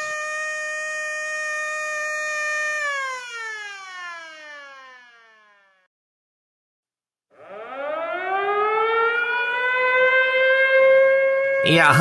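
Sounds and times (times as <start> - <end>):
siren winding down: 0.0 - 5.9, 7.3 - 12.0.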